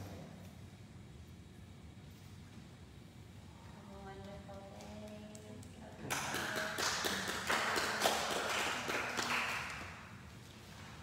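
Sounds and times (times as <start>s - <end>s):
people clapping: 4.2s - 10.3s.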